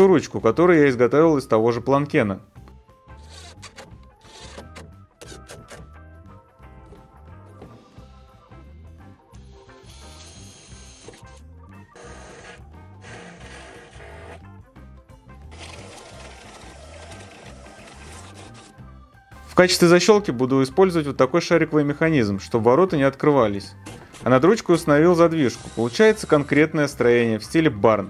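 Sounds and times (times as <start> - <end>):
background music with beat: 2.5 - 9.5
cordless drill running: 9.4 - 11.2, 11.9 - 14.4, 15.5 - 18.6, 25.5 - 26.6.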